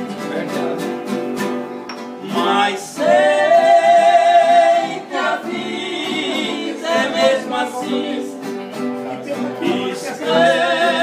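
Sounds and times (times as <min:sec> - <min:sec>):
acoustic guitars: 0:00.0 - 0:11.0
two men singing: 0:02.2 - 0:08.6, 0:09.2 - 0:11.0.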